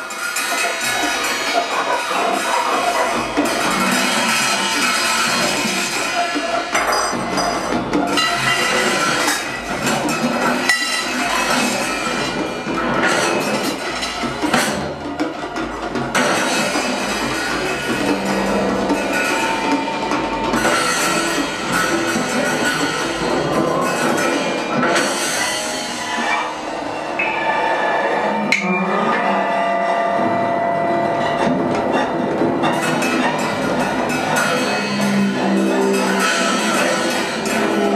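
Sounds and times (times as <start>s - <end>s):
clinks and wood-block percussion: 0.0s - 26.3s
high and mid held tones: 12.1s - 32.8s.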